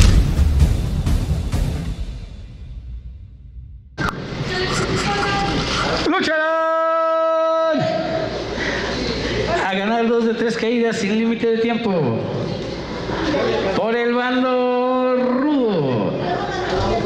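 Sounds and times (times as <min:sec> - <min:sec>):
boom and whoosh: 0:00.0 - 0:04.0
crowd hubbub: 0:04.0 - 0:06.4, 0:07.8 - 0:10.2, 0:12.3 - 0:13.8, 0:14.8 - 0:17.0.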